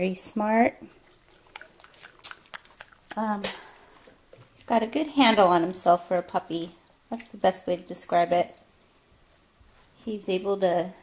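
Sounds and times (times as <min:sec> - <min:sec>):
puppy chewing crunchy treat: 0:00.9 - 0:08.7.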